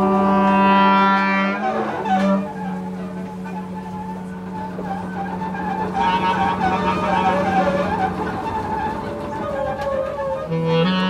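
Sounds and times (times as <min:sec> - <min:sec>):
bowed double bass drone: 0:00.0 - 0:11.0
wavering clarinet tones: 0:00.0 - 0:11.0.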